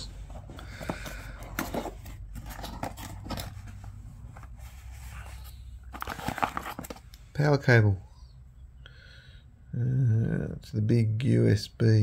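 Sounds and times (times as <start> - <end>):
cardboard box being opened: 0.4 - 7.0.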